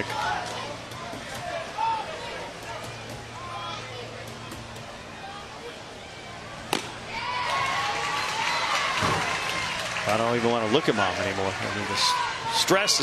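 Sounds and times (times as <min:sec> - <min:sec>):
stadium crowd murmur: 0:00.0 - 0:13.0
baseball bat crack: 0:06.7 - 0:07.0.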